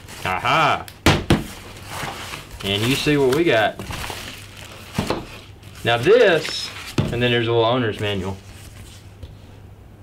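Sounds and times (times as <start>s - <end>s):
plastic and cardboard rustling: 0.0s - 9.4s
man speaking: 0.2s - 0.9s, 5.8s - 8.4s.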